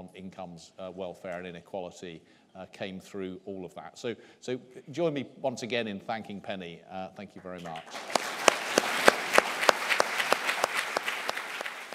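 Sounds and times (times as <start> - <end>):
audience applauding: 7.6 - 11.9
nearby hands clapping sharply: 7.7 - 11.9.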